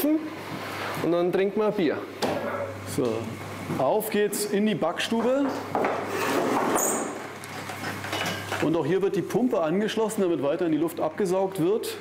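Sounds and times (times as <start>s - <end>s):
wooden mould scraping on metal rack: 6.0s - 7.2s.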